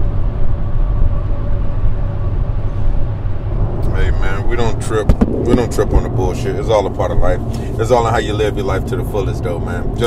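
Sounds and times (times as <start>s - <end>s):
car driving rumble from inside: 0.0s - 10.0s.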